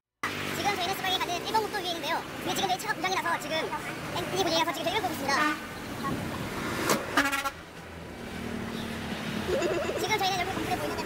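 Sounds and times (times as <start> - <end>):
road noise: 0.2 - 11.0
vehicle horn toot: 7.2 - 7.6.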